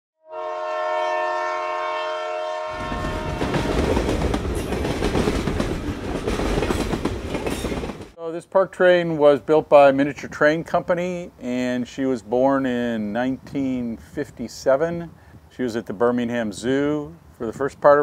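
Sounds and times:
locomotive air horn: 0.2s - 4.2s
train rumbling along track: 2.7s - 8.2s.

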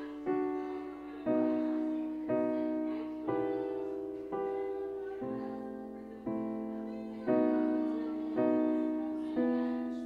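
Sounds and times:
electric piano chords: 0.0s - 10.0s.

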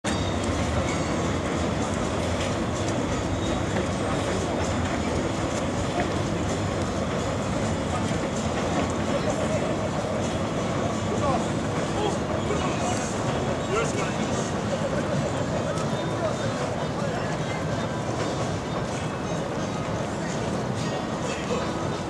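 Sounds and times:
train wheels rumbling on bridge: 0.1s - 22.0s.

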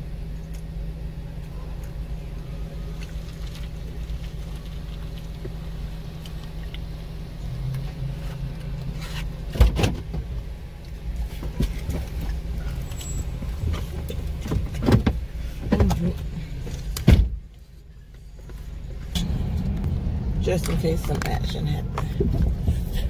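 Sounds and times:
car interior hum: 0.0s - 23.0s.

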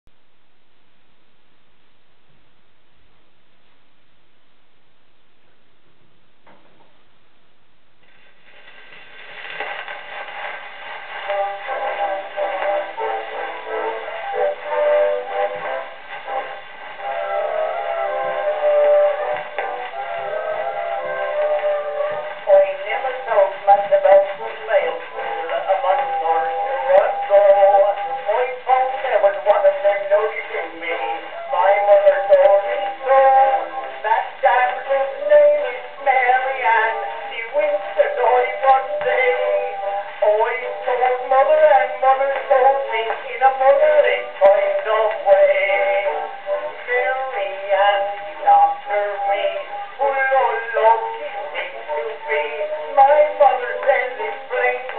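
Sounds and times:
record surface crackle: 0.0s - 54.9s
gramophone playing old song: 9.2s - 54.9s.

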